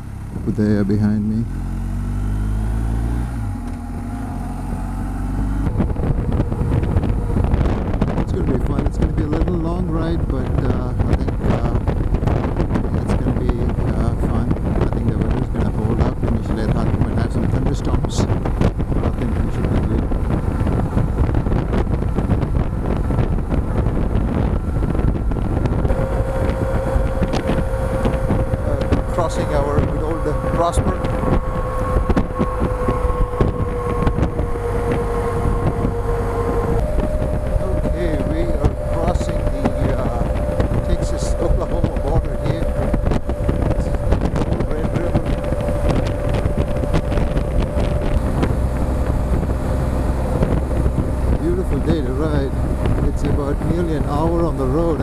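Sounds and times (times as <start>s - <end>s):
motorcycle accelerating: 0.0s - 55.0s
steady tone: 0.0s - 55.0s
wind noise on microphone: 0.0s - 55.0s.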